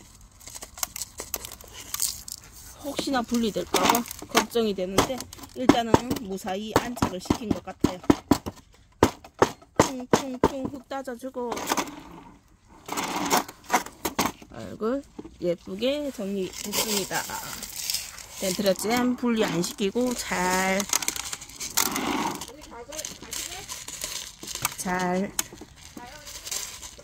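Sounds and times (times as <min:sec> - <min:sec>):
soil grains clicking and rustling: 0:00.0 - 0:04.7, 0:15.4 - 0:27.0
pot scraping on tray: 0:11.4 - 0:14.2, 0:16.4 - 0:25.0.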